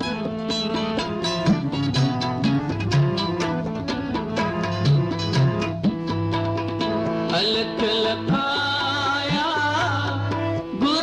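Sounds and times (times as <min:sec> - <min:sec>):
harmonium chords: 0:00.0 - 0:11.0
tabla strokes: 0:00.0 - 0:11.0.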